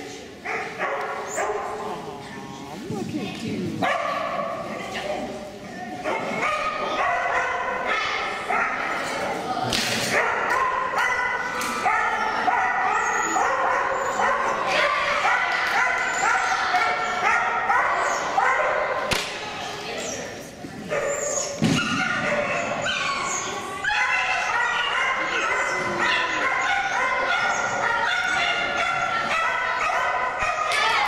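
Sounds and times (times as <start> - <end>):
dog barking in high yips: 10.1 - 18.8, 20.9 - 31.0.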